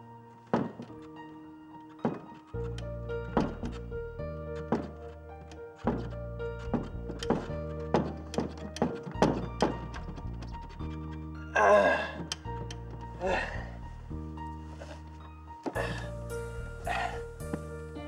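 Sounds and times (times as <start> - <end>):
held keyboard chords: 0.0 - 18.0
repeated thumps: 0.5 - 1.2, 1.9 - 11.1.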